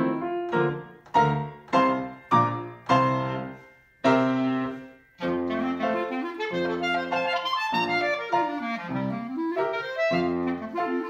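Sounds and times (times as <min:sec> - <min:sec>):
clarinet melody: 0:00.0 - 0:11.0
grand piano accompaniment: 0:00.0 - 0:11.0.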